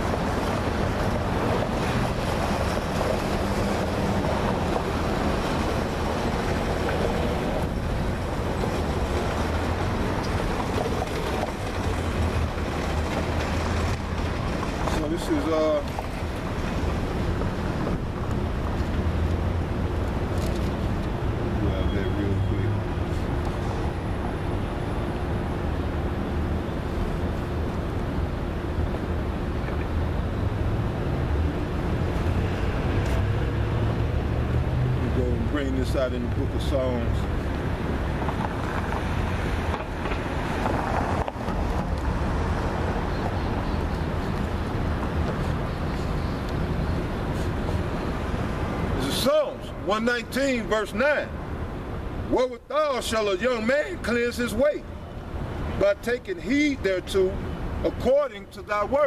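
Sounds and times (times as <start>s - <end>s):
road traffic: 0.0s - 59.0s.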